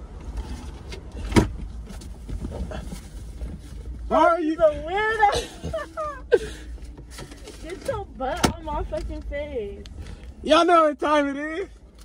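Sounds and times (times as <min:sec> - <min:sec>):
low rumble inside car: 0:00.0 - 0:12.0
rustling of person shifting: 0:00.1 - 0:10.4.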